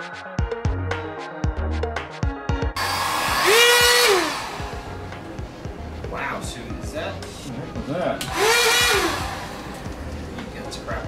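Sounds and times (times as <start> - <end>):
heat gun blowing air: 2.8 - 5.4, 8.2 - 9.9.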